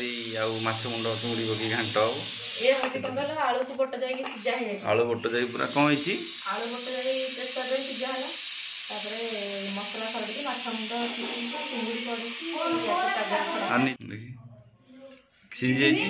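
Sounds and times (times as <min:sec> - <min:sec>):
woman speaking: 0:02.6 - 0:04.8, 0:06.4 - 0:14.0.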